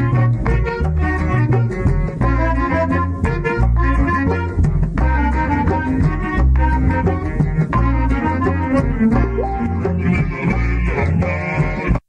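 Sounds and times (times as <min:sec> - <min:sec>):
cumbia band music: 0:00.0 - 0:12.0.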